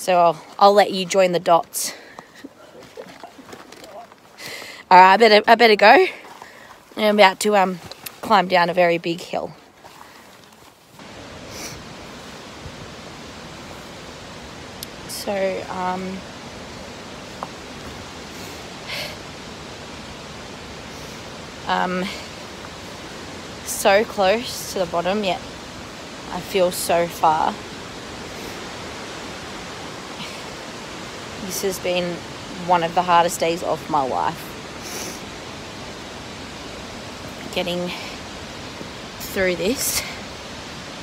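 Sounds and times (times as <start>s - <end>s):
steady outdoor hiss: 0.0s - 41.0s.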